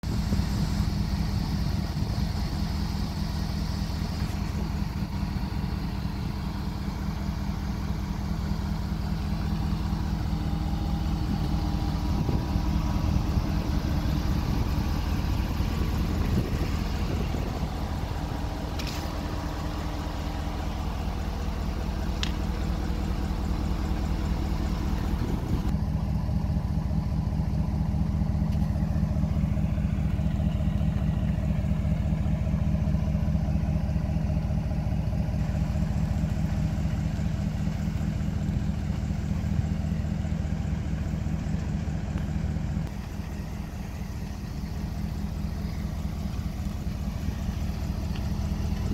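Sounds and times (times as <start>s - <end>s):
pickup truck engine idling: 0.0s - 48.9s.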